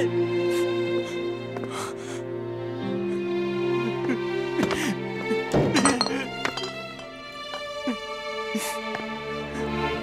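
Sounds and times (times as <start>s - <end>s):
slow background music: 0.0s - 10.0s
sharp clinks: 5.8s - 7.1s.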